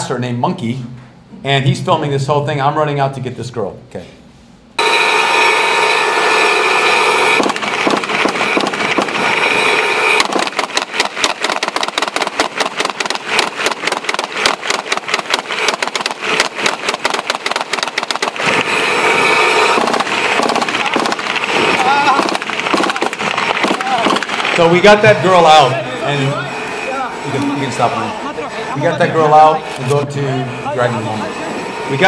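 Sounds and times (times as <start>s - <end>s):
tank engine whine: 4.8s - 32.0s
rapid gunfire: 7.0s - 25.2s.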